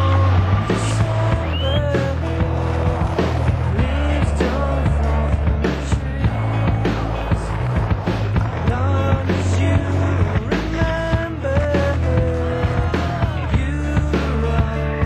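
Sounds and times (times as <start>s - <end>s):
music with bass line and drums: 0.0s - 15.0s
skateboard wheels rolling on concrete: 0.0s - 15.0s.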